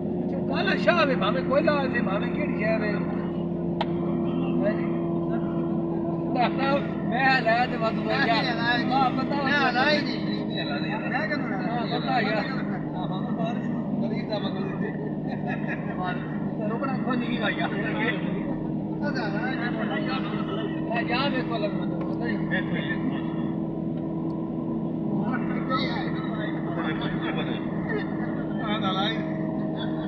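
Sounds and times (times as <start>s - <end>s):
car engine and road drone: 0.0s - 30.0s
voices speaking: 0.1s - 30.0s
people talking: 0.2s - 24.2s, 24.8s - 30.0s.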